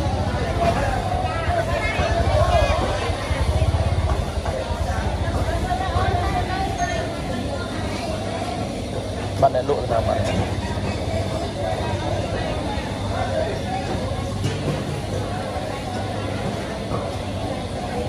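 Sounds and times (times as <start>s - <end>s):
vendors and shoppers talking: 0.0s - 18.0s.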